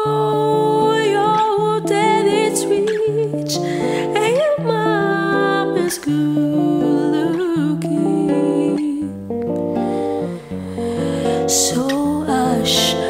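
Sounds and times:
acoustic guitars playing: 0.0 - 13.0
breath in: 9.7 - 11.6.

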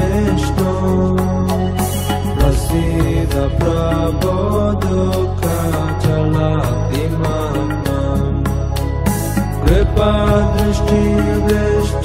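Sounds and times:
devotional chant melody: 0.0 - 12.0
low drone: 0.0 - 12.0
percussion strikes: 0.0 - 12.0.

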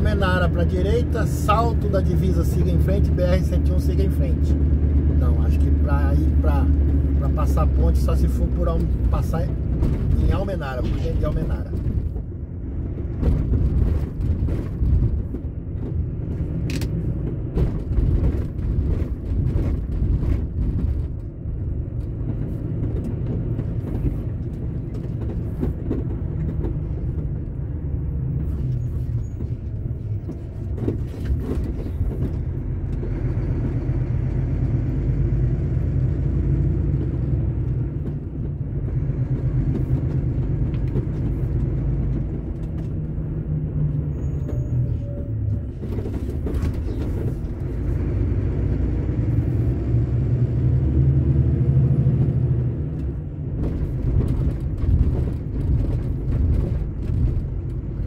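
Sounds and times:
diesel truck engine and road rumble: 0.0 - 58.0
knocks and rattles over rough road: 0.0 - 58.0.

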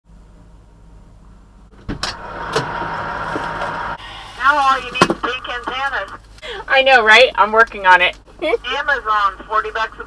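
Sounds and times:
truck engine idling: 0.1 - 10.0
loud steady noise: 1.8 - 6.8.

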